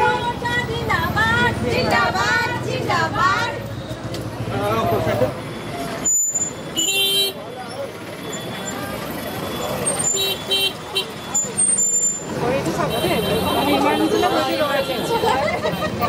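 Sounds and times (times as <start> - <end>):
street noise: 0.0 - 16.0
voices: 0.0 - 16.0.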